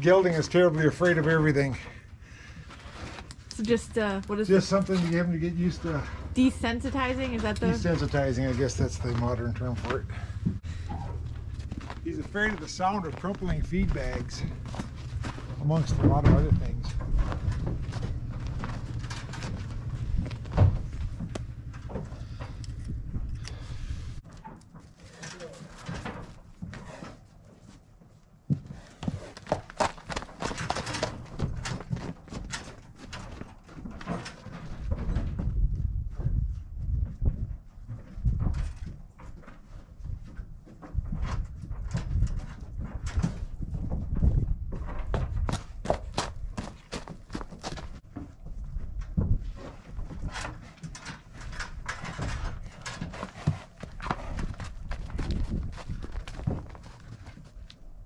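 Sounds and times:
horse hooves on frozen ground: 0:02.4 - 0:58.0
low rumble: 0:04.0 - 0:24.2.

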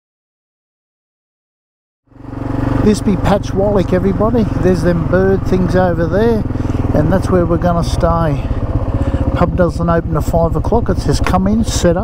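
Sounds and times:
motorcycle engine running: 0:02.1 - 0:12.0
man's voice: 0:02.8 - 0:08.6, 0:09.2 - 0:12.0.

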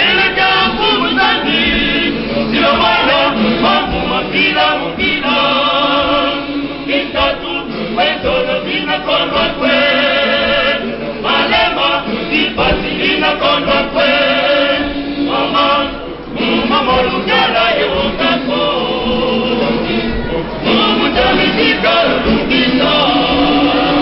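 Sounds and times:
male choir singing a cappella: 0:00.0 - 0:24.0.

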